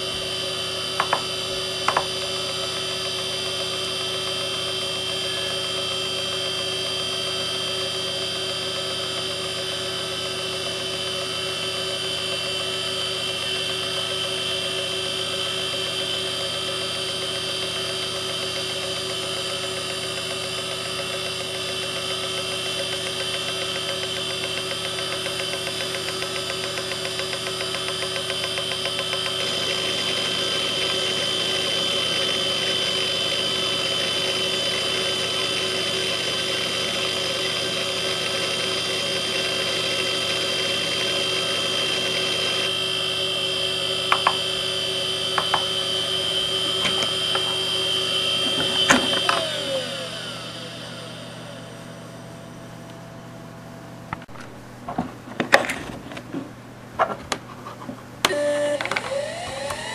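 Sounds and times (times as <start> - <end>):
hard drive spinning whine: 0.0 - 54.9, 56.3 - 59.9.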